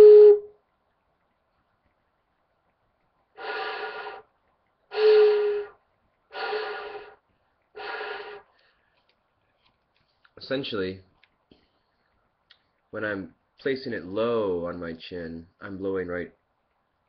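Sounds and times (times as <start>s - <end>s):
breathy flute notes: 0.0s - 0.6s, 3.4s - 4.3s, 4.9s - 7.2s, 7.8s - 8.7s.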